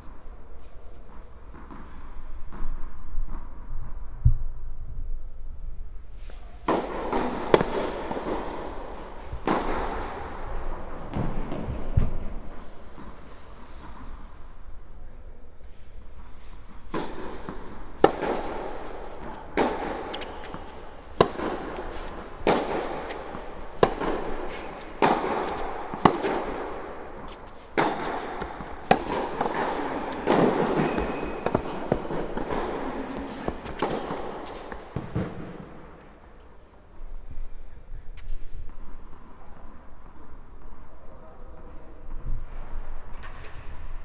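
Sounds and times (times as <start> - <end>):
tennis racket hitting ball: 6.6 - 11.7, 16.8 - 36.2
tennis ball bouncing: 6.6 - 11.8, 16.8 - 36.2.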